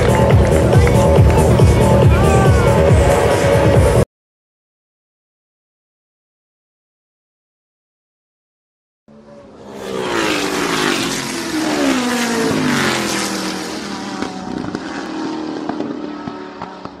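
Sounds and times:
rally car engine running hard: 9.1 - 17.0.

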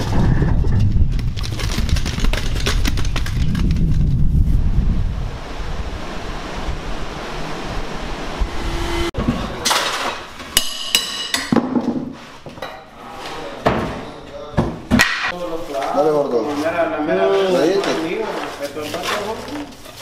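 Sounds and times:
wind buffeting microphone: 0.0 - 9.1
wind hiss: 3.8 - 9.1.

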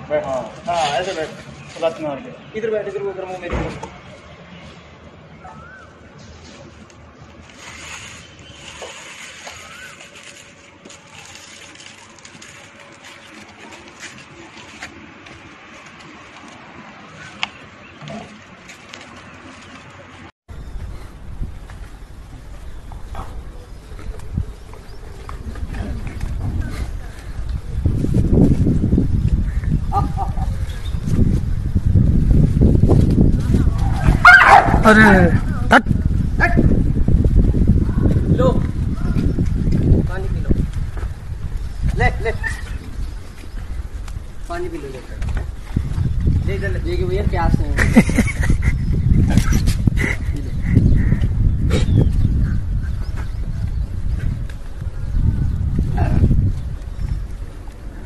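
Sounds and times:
steady low rumble: 20.5 - 58.0
dogs yelping and barking: 33.9 - 34.8.

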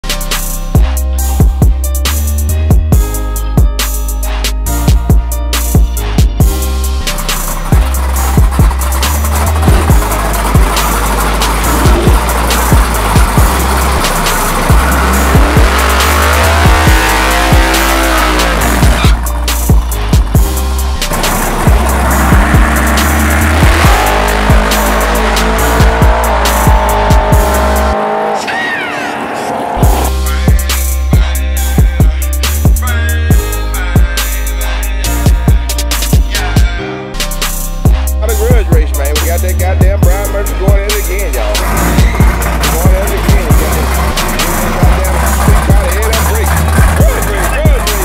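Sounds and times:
hip-hop music with heavy beat: 0.0 - 48.0
car engine revving: 5.6 - 36.6, 38.3 - 48.0
tyres squealing: 40.9 - 48.0.

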